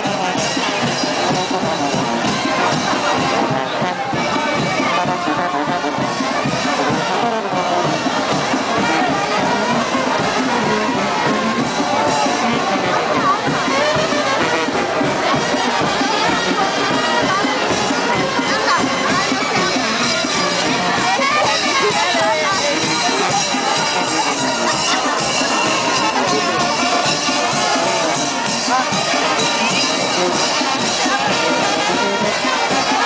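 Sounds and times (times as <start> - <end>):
brass band playing: 0.0 - 33.0
crowd voices: 0.0 - 33.0.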